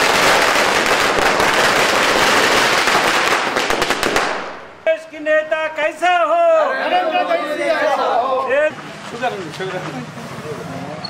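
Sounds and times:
firecrackers crackling: 0.0s - 5.0s
men shouting: 5.7s - 8.8s.

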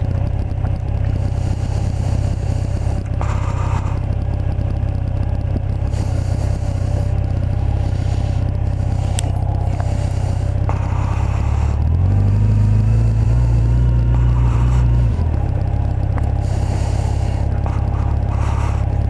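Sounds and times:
motorcycle engine cruising: 0.0s - 19.0s.

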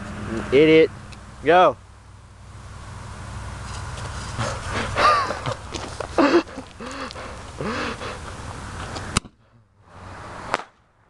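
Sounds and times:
firework sharp crack: 10.5s - 10.9s.

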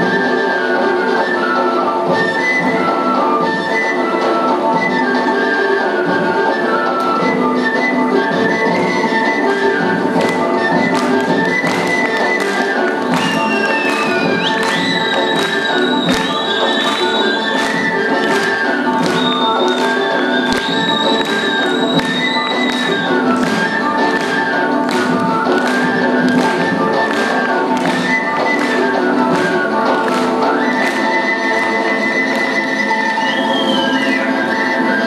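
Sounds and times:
folk dance music: 0.0s - 35.0s.

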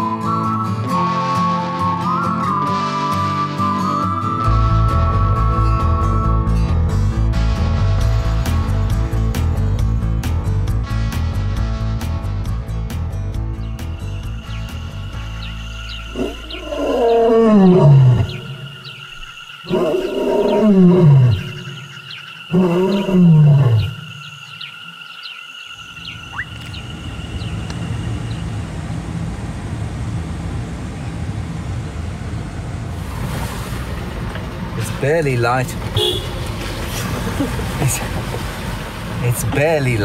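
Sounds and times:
background music: 0.0s - 18.8s
lion roaring: 16.1s - 18.8s, 19.6s - 21.9s, 22.5s - 24.1s.

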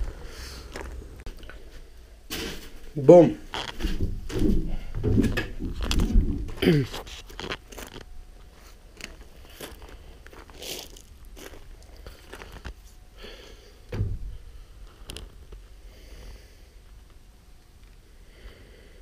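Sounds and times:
footsteps on dry leaves and gravel: 6.7s - 12.9s
heavy thump: 13.9s - 14.4s.

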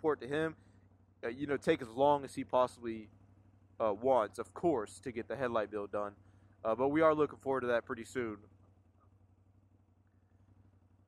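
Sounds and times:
faint engine idling hum: 0.0s - 11.0s.

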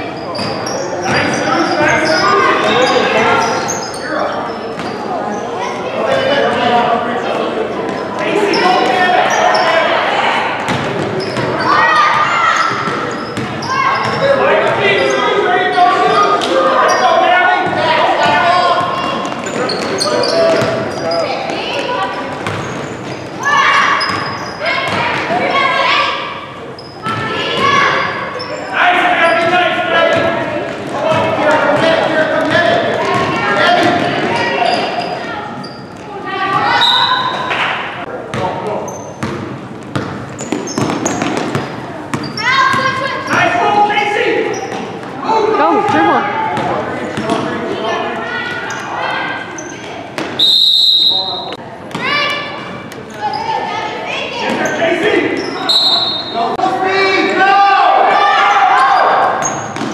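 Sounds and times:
shouting voices echoing: 5.3s - 22.3s, 23.3s - 38.0s, 42.2s - 59.8s
referee's whistle: 36.7s - 37.4s, 50.4s - 51.6s, 55.6s - 56.4s.

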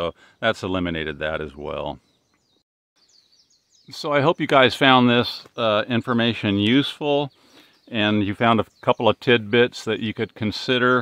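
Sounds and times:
faint bird chirps: 0.0s - 9.8s.

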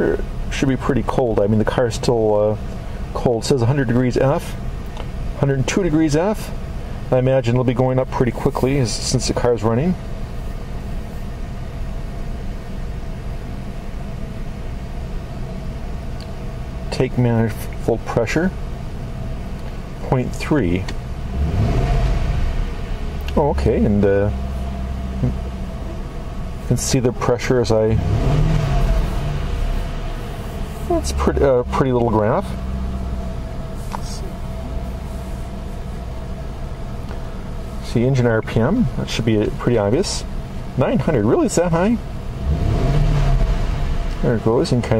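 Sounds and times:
car engine idling: 0.0s - 44.9s
faint steady hum: 0.0s - 44.9s.

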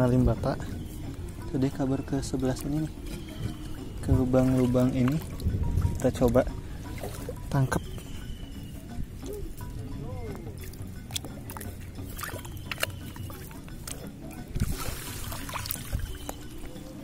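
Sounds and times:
background music: 0.0s - 17.0s
bare feet wading: 0.0s - 17.0s
shallow water splashing: 0.0s - 17.0s.

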